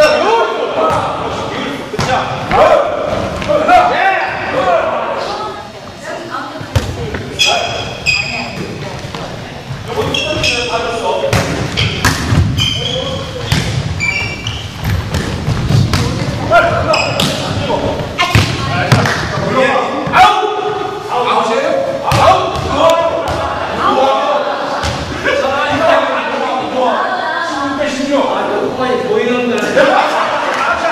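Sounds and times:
players shouting in a gym: 0:00.0 - 0:05.6, 0:21.7 - 0:27.4
volleyball slaps and bounces: 0:06.7 - 0:07.2, 0:11.3 - 0:12.6, 0:13.4 - 0:14.0, 0:14.8 - 0:16.4, 0:17.1 - 0:17.6, 0:18.2 - 0:19.5, 0:22.1 - 0:23.5, 0:24.8 - 0:25.2.

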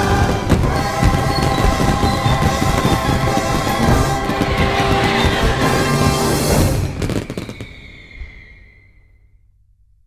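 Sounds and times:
fireworks crackling: 0:00.0 - 0:09.0.

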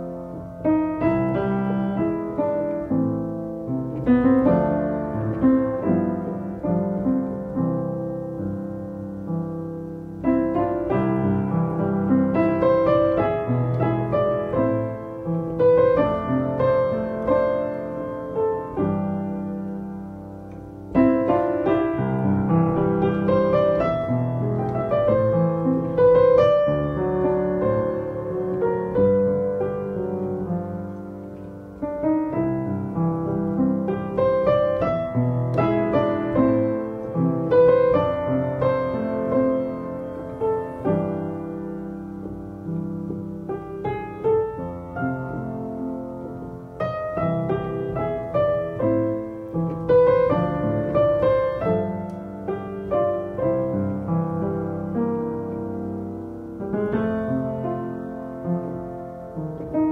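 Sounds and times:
slow gentle piano music: 0:00.0 - 0:59.9.

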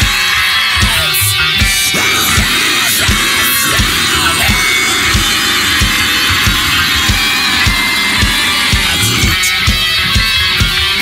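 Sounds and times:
distorted guitars: 0:00.0 - 0:11.0.

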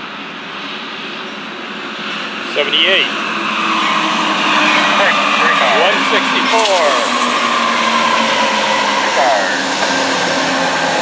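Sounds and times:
diesel locomotive engines droning: 0:00.0 - 0:11.0.

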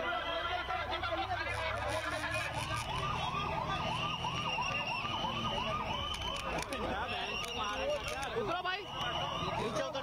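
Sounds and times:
electronic siren yelping: 0:00.4 - 0:10.0.

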